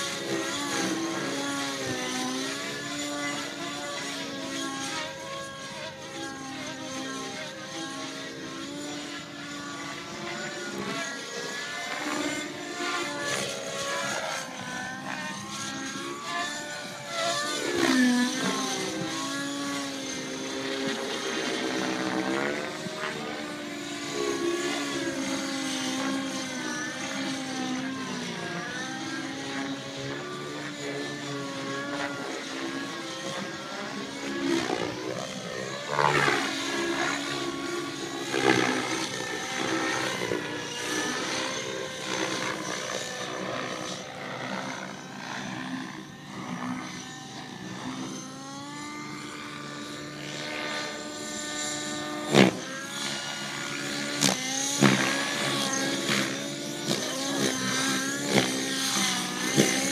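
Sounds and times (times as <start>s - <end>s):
model airplane motor droning: 0.0s - 59.9s.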